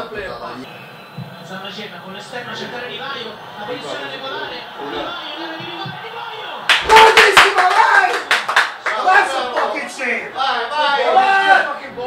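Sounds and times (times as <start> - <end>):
excited shouting: 3.8 - 11.8
people clapping: 5.9 - 10.0.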